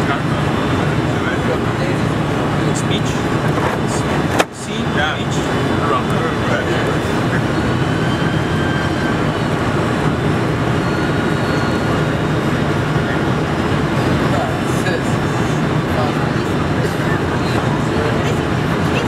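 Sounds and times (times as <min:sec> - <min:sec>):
airliner cabin engine noise: 0:00.0 - 0:19.0.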